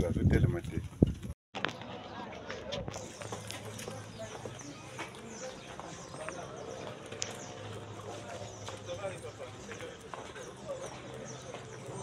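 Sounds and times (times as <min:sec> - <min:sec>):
indistinct voices talking: 0:01.6 - 0:12.0.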